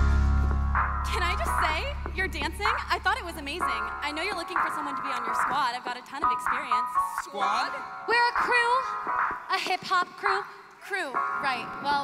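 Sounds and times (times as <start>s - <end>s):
stage backing track: 0.0s - 12.0s.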